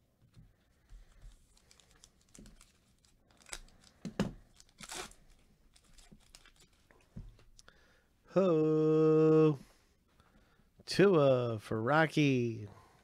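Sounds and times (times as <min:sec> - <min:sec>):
foil wrapper crinkling and tearing: 0:01.2 - 0:06.9.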